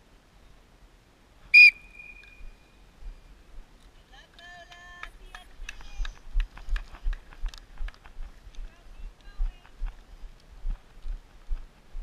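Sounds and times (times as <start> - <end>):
whistle blast: 1.5 - 2.7.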